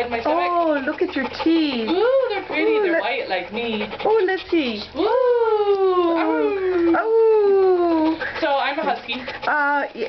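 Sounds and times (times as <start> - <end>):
dog howling: 5.0 - 8.2.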